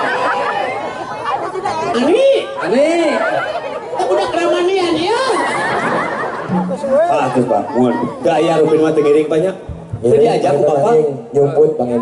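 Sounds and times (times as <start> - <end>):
crowd chatter: 0.0 - 12.0
men talking through microphones: 6.4 - 12.0.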